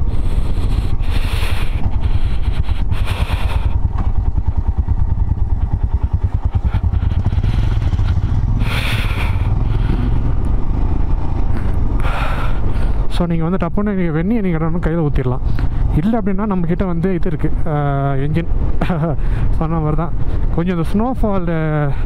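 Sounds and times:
wind noise on microphone: 0.0s - 4.4s
motorcycle engine running: 0.0s - 22.0s.

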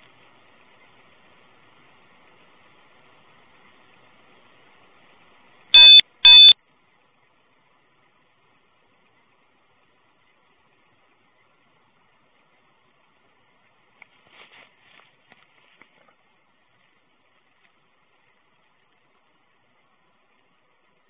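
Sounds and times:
faint hiss: 0.0s - 21.0s
short electronic beeps: 5.8s - 6.6s.

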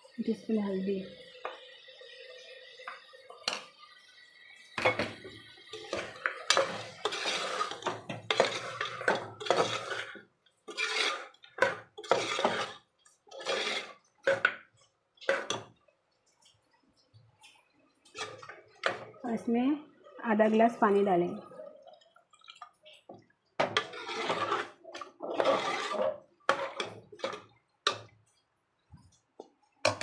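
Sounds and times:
metal spoon scraping in pot: 5.7s - 14.5s, 15.2s - 15.7s, 18.1s - 19.1s, 23.6s - 28.0s.

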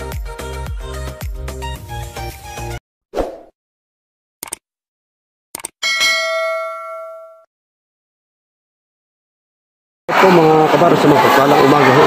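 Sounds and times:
bell ding: 5.8s - 7.5s.

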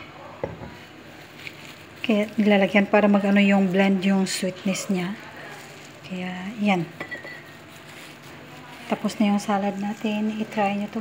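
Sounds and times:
dull knock on kitchen counter: 0.4s - 0.8s.

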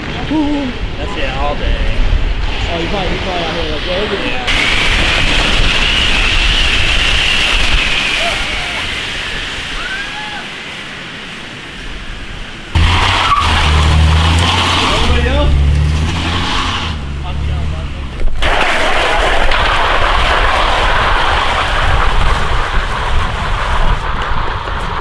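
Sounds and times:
hiss of tyre and road noise: 2.0s - 17.2s
tyres skidding on wet road: 2.4s - 25.0s
car engine revving: 12.8s - 18.4s.

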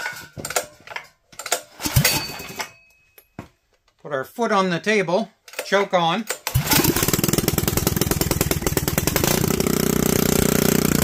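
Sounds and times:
clicks and knocks of metal parts: 0.0s - 4.0s, 5.4s - 6.6s.

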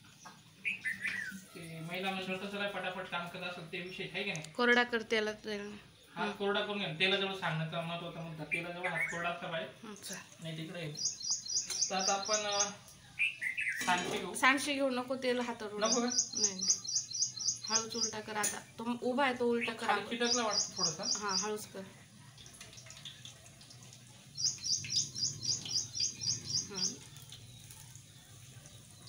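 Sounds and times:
bird chirping: 0.0s - 1.8s, 8.2s - 9.4s, 10.9s - 13.9s, 15.8s - 18.5s, 19.5s - 21.7s, 24.2s - 29.0s
bird calling: 0.6s - 1.4s, 24.4s - 27.3s.

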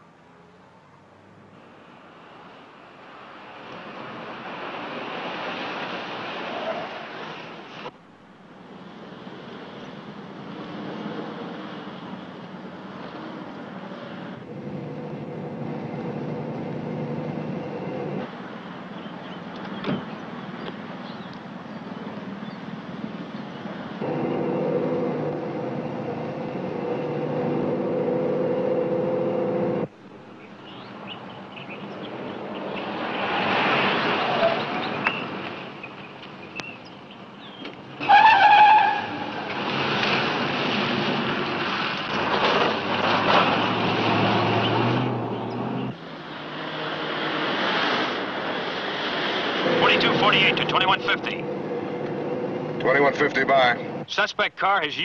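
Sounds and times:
car engine running: 14.4s - 18.2s, 24.0s - 29.9s, 49.6s - 54.0s
tyre screech: 38.0s - 39.6s.

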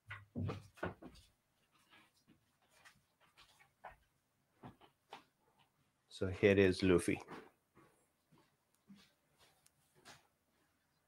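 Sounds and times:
faint rustling and handling: 0.2s - 6.1s, 7.0s - 11.0s.

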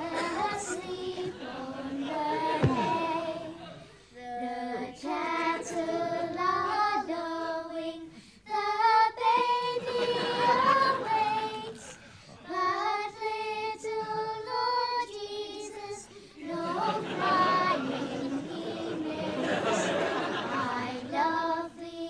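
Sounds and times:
children singing a carol: 0.0s - 22.0s.

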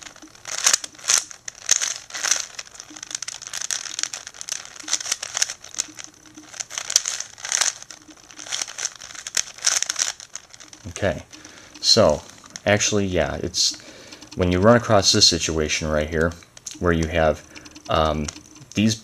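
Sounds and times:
puzzle cube clacking and scraping: 0.0s - 19.0s.

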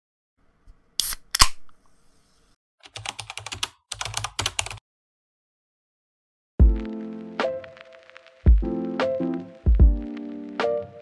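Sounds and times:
typing on computer keyboard: 2.8s - 4.8s.

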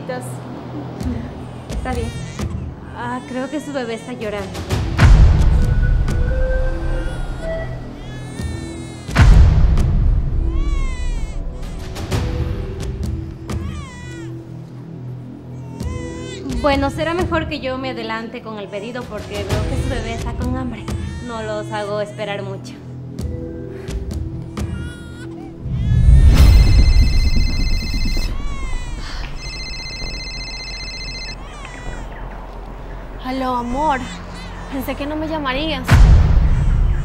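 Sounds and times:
background music: 0.0s - 37.0s
infant crying: 1.1s - 4.5s, 6.7s - 9.2s, 10.4s - 11.9s, 13.5s - 14.8s, 15.5s - 17.0s, 20.8s - 22.9s, 23.8s - 32.4s, 33.4s - 35.4s
smartphone ringtone: 26.4s - 28.5s, 29.4s - 31.4s.

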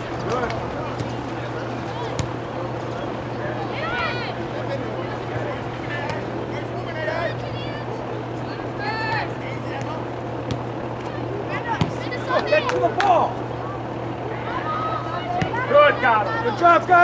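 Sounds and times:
distant shouts: 0.0s - 17.0s
steady low hum: 0.0s - 17.0s.

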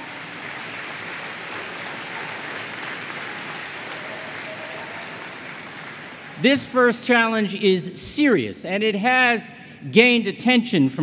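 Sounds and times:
large crowd applauding: 0.0s - 7.1s.

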